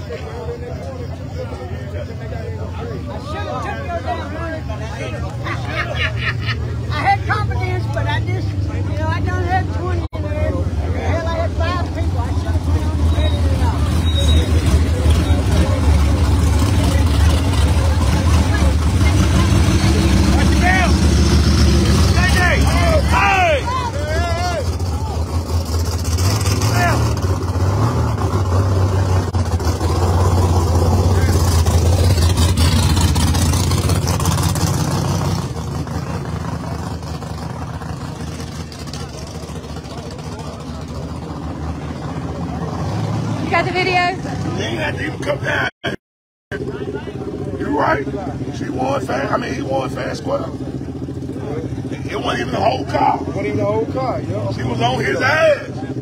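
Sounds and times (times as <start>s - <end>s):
people talking and calling out: 0.0s - 56.0s
race car engines rumbling: 0.0s - 56.0s.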